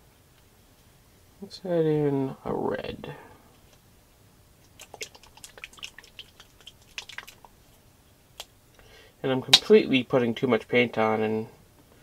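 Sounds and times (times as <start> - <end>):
brush on wet paint ticking: 4.6 - 8.5.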